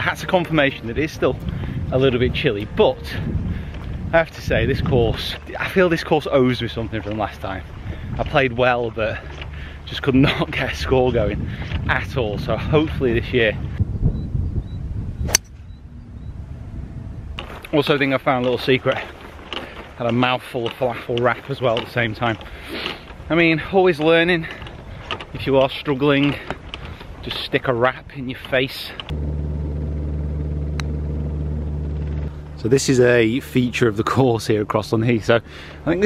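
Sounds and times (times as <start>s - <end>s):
wind rumble on microphone: 0.0s - 29.2s
steady low hum: 13.6s - 17.7s, 29.1s - 34.8s
golf club striking ball: 15.3s - 16.2s.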